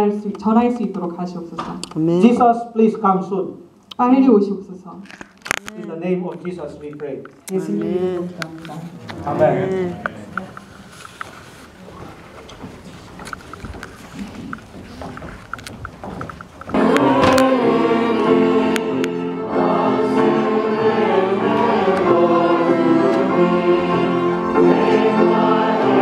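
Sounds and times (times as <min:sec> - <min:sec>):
room rustle: 0:10.1 - 0:17.4
string ensemble chords: 0:16.8 - 0:26.0.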